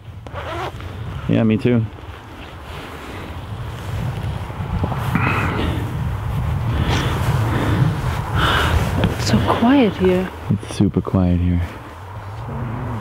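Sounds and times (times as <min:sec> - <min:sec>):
wind buffeting microphone: 0:00.0 - 0:13.0
hisses of gusts: 0:00.6 - 0:10.8.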